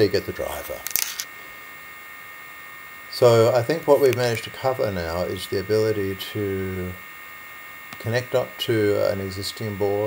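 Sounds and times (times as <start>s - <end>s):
electrical hum: 0.0s - 10.0s
thin whining tones: 0.0s - 10.0s.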